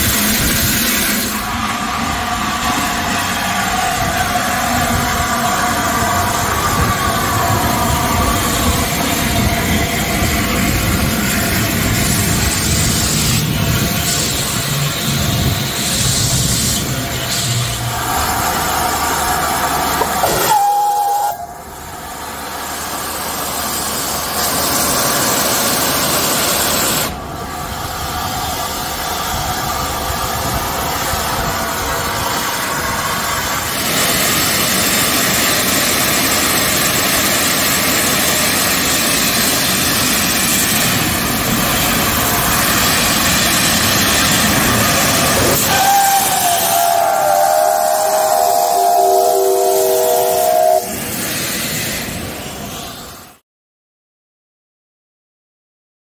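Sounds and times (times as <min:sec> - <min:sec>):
steam locomotive hissing steam: 0:00.0 - 0:53.4
brief whistle note: 0:20.2 - 0:21.6.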